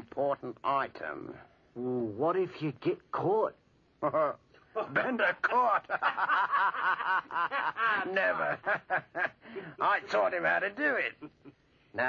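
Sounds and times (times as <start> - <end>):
man laughing heartily: 4.0 - 9.5.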